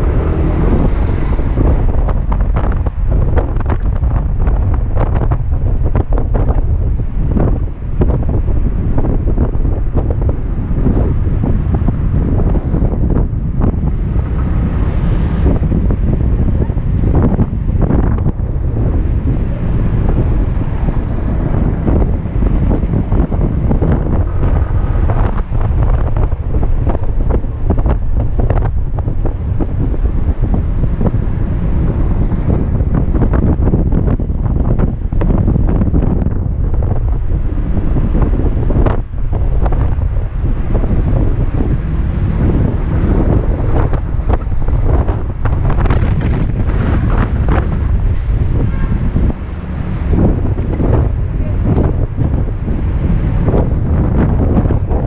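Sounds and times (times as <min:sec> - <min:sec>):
wind rumble on microphone: 0:00.0 - 0:55.0.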